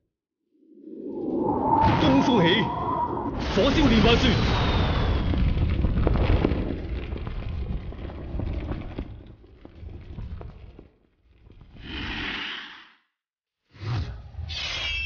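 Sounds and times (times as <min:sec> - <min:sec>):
fire roaring: 0:00.8 - 0:12.8
loud explosion: 0:01.8 - 0:08.2.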